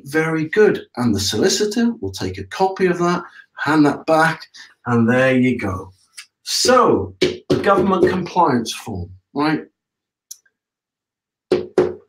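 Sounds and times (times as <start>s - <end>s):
hand patting paper on whiteboard: 6.5s - 8.4s, 11.5s - 12.0s.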